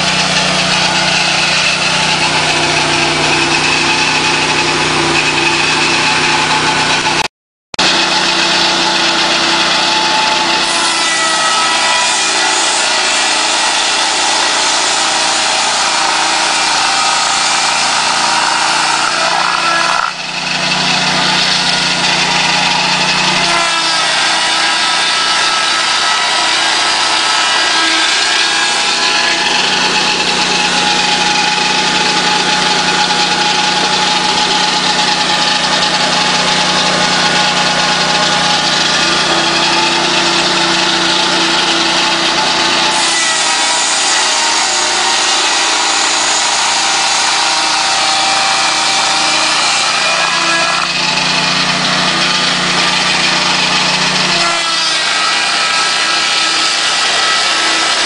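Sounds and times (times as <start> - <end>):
petrol engine running steadily: 0.0 - 58.0
circular saw blade spinning: 7.8 - 58.0.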